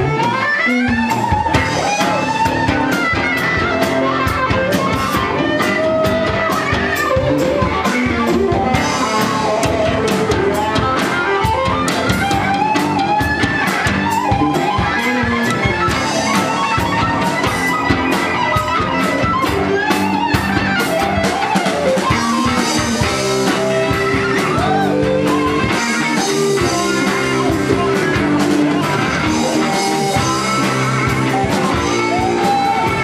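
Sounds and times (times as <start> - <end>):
live rock band playing: 0.0 - 33.0.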